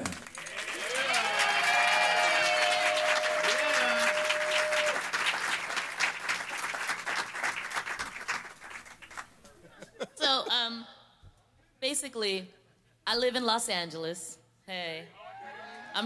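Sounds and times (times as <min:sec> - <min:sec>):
audience applauding and cheering: 0:00.0 - 0:09.5
person whooping: 0:00.7 - 0:05.0.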